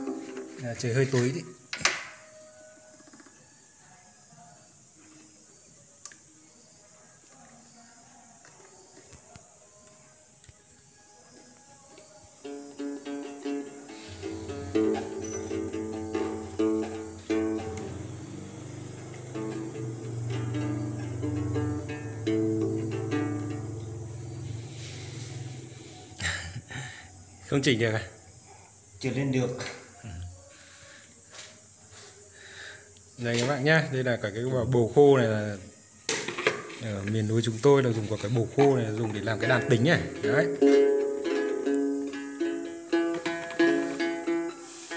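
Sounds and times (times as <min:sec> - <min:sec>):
plucked lute: 0:00.0 - 0:02.1, 0:12.4 - 0:25.8, 0:38.2 - 0:44.9
low sustained tone: 0:13.9 - 0:26.2.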